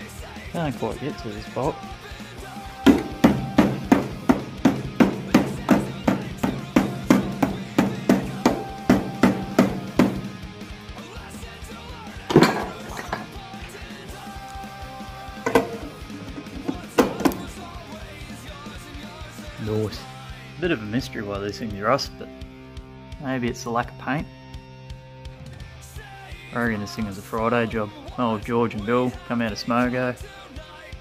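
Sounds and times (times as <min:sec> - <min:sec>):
hammer striking rusted steel: 0:02.9 - 0:10.3, 0:12.3 - 0:13.3, 0:15.5 - 0:17.5.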